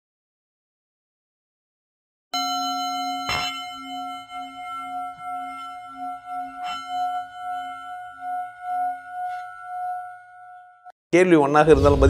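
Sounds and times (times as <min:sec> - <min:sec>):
singing bowl ringing: 0:02.4 - 0:10.9.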